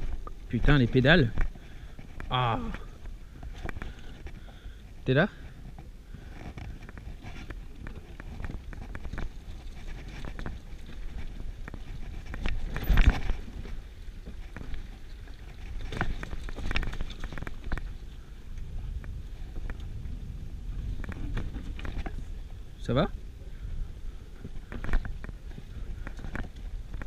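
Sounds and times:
bike rattling: 0.0 - 27.0
bike knocking over rocks: 6.3 - 20.1
steady low rumble: 17.6 - 27.0.

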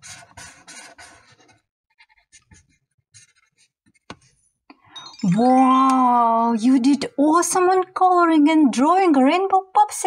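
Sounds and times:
marker scribbling on paper: 0.0 - 4.4.

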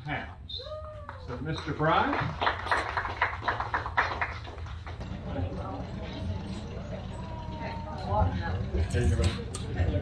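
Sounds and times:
people clapping: 1.0 - 5.3.

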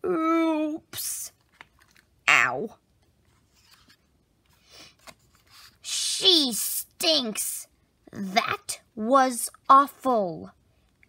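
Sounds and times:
paper page rustling: 1.3 - 2.1, 3.2 - 5.8.

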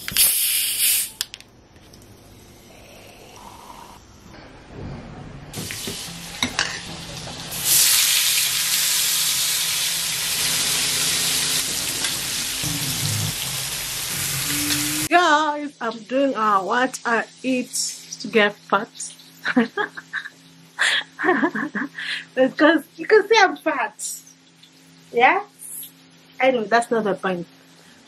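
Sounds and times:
chicken sizzling in butter: 7.5 - 15.1.

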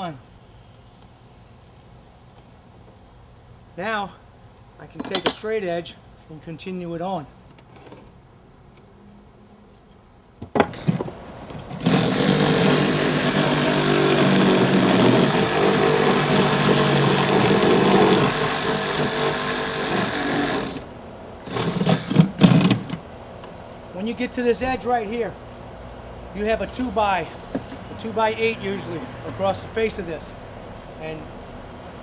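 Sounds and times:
reciprocating saw cutting wood: 11.8 - 20.9, 21.5 - 22.9.

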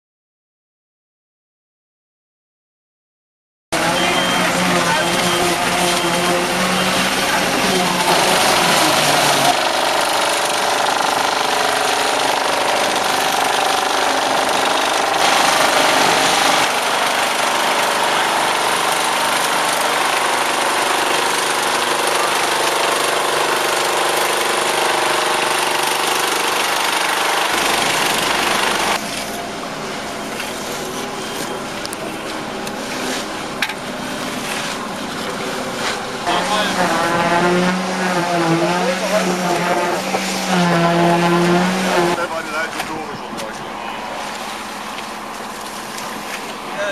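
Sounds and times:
concrete screed vibrator drone: 3.8 - 46.9.

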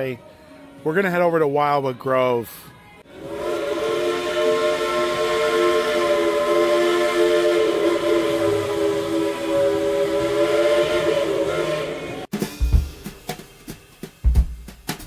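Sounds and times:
multi-tone whistle: 3.1 - 12.3.

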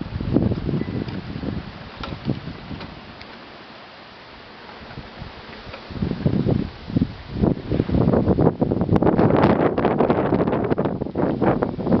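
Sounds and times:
plastic wheels rolling on asphalt: 0.0 - 12.0.

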